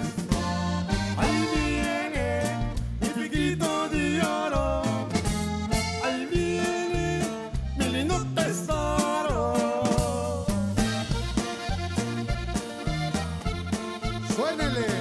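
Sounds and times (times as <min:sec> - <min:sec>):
band playing: 0:00.0 - 0:15.0
button accordion melody: 0:00.0 - 0:15.0.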